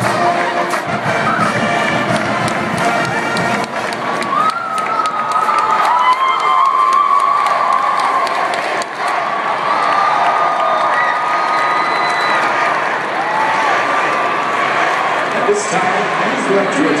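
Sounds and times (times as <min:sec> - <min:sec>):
marching band music: 0:00.0 - 0:05.6
people clapping: 0:00.0 - 0:15.6
stadium crowd cheering: 0:00.0 - 0:17.0.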